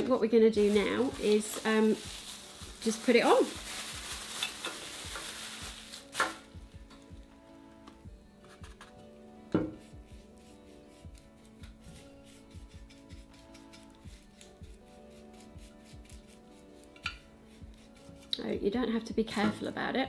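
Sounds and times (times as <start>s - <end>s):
brush scratching and dabbing paint: 9.7s - 18.5s.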